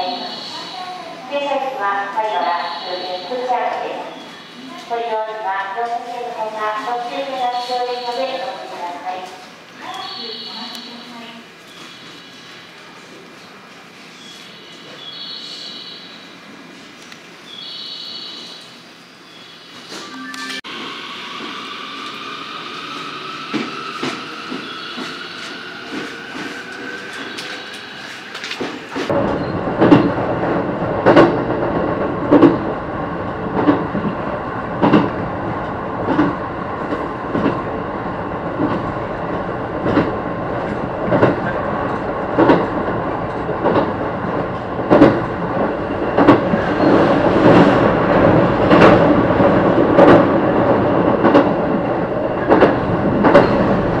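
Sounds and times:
train rolling rumble: 20.7 - 54.0
wheels clacking over rail joints: 38.4 - 54.0.

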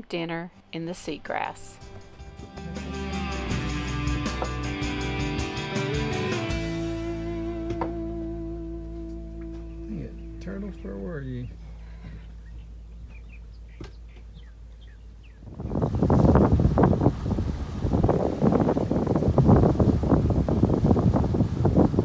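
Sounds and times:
low steady hum: 6.6 - 22.0
wind buffeting microphone: 11.1 - 22.0.

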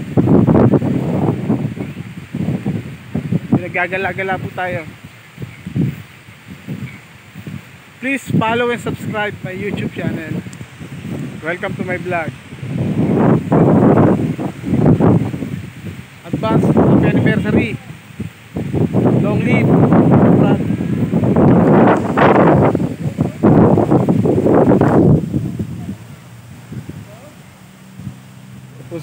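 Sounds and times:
wind buffeting microphone: 0.0 - 29.0.

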